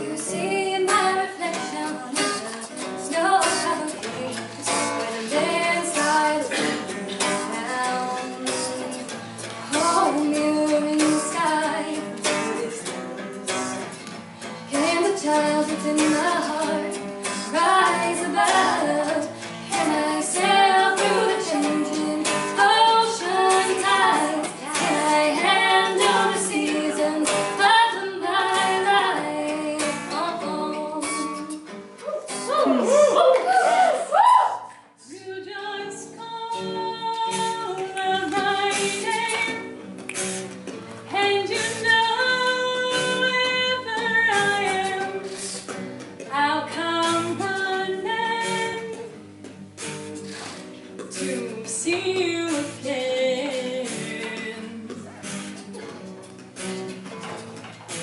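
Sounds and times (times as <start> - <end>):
woman singing pop song: 0.0 - 31.8, 34.2 - 39.8, 41.0 - 49.2, 51.0 - 55.4
strummed acoustic guitar: 0.0 - 33.0, 35.0 - 58.0
group of voices harmonizing: 32.0 - 35.0.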